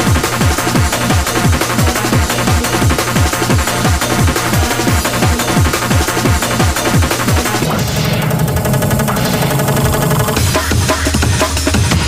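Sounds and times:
buzzing bass synth: 0.0s - 10.6s
sustained synth chord: 1.8s - 10.5s.

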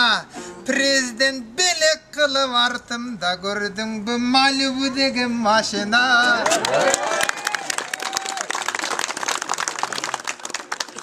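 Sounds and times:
crowd clapping: 6.4s - 11.0s.

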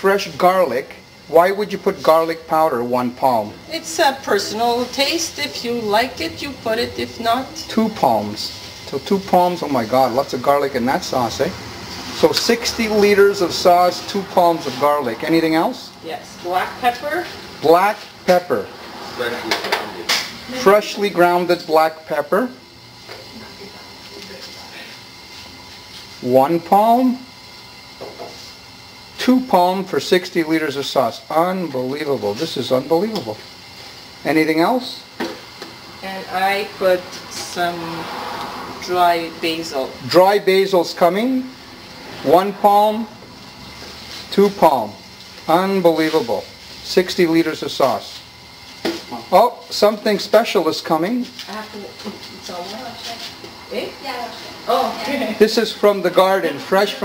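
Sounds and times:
voices talking: 0.0s - 22.6s
high-pitched hiss: 0.0s - 57.0s.

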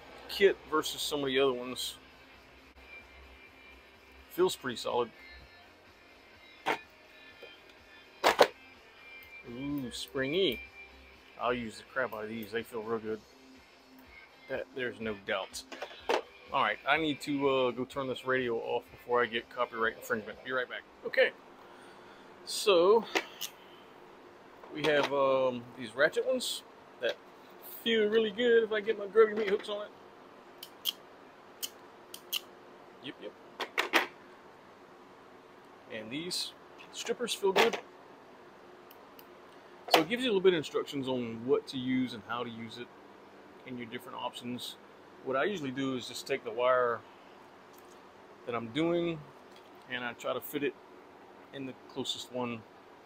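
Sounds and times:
faint radio music: 0.0s - 53.0s.

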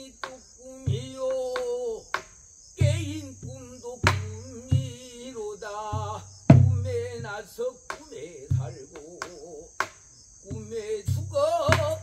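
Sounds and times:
man singing with wavering notes: 0.0s - 2.2s, 2.8s - 12.0s
low drum thumps: 0.9s - 1.8s, 2.8s - 12.0s.

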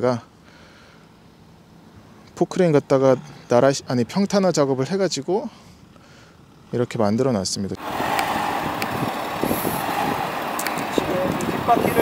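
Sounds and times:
diesel engine running slowly: 0.2s - 12.0s.

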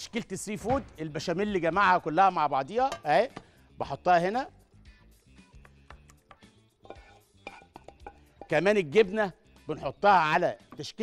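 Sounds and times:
faint background music: 0.0s - 11.0s
utensil scraping a pan: 6.8s - 8.6s.

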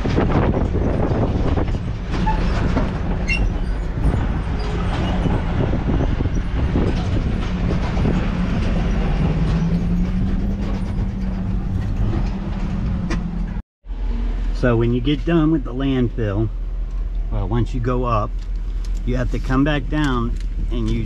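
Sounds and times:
truck body rattling: 0.0s - 13.6s
truck engine drone: 0.0s - 21.0s.

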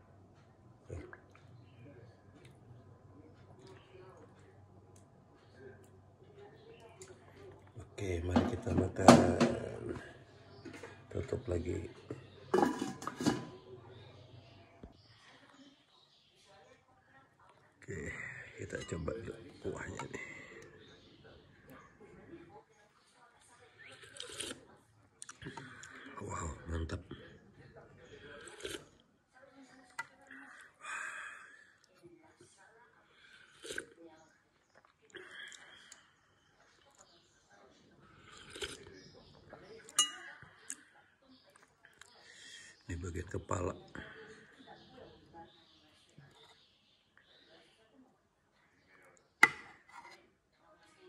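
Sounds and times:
spoon clinking on ceramic plate: 12.5s - 13.6s, 40.0s - 40.3s
spoon scraping dish: 12.5s - 13.6s, 49.4s - 50.2s.

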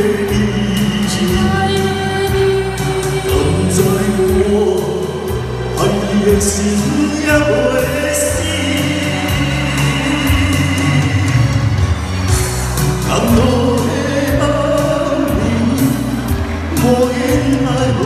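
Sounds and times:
amplified singing: 0.0s - 18.0s
pop backing track: 0.0s - 18.0s.

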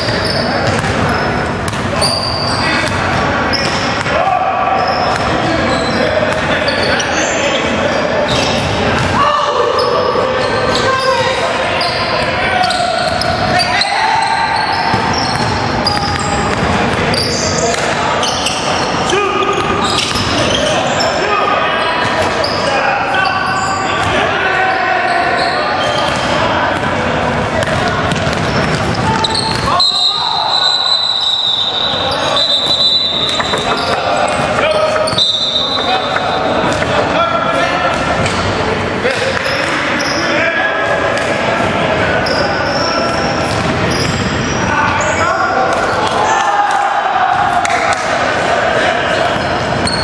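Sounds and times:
sneakers squeaking: 0.0s - 40.4s, 41.1s - 50.0s
players calling out: 0.0s - 50.0s.

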